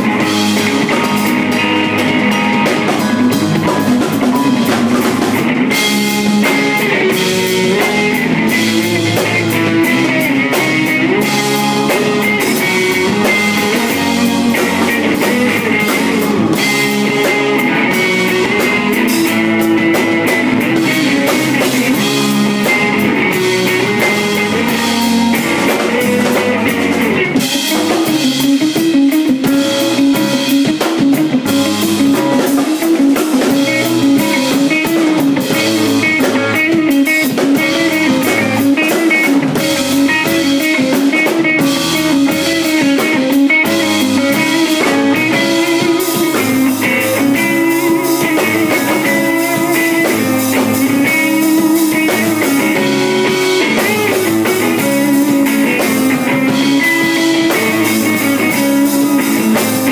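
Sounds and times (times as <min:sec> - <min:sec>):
drum kit: 0:00.0 - 0:59.9
electric guitars: 0:00.0 - 0:59.9
keyboard: 0:00.0 - 0:59.9.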